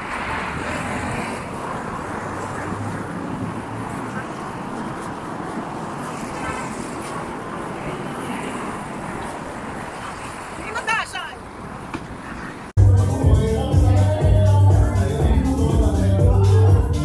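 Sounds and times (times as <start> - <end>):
cars passing: 0.0 - 17.0
passers-by voices: 0.0 - 17.0.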